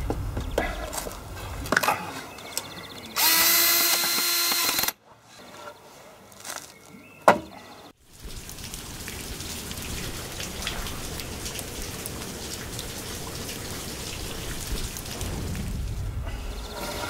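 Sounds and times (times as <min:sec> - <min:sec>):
rain falling: 0:08.0 - 0:17.0
deep rumble: 0:14.6 - 0:17.0.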